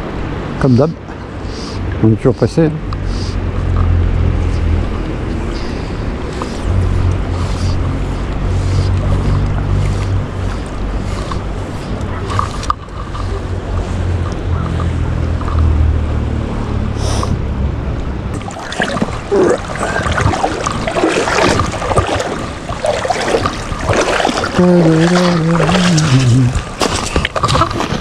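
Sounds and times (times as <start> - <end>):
river water: 0.0 - 28.0
wind buffeting microphone: 3.4 - 28.0.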